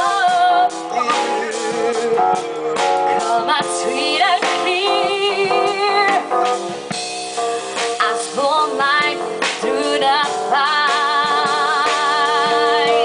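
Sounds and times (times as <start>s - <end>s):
woman singing with vibrato: 0.0s - 2.3s, 3.1s - 6.4s, 8.0s - 13.0s
drum kit: 0.0s - 13.0s
jazz band playing: 0.0s - 13.0s.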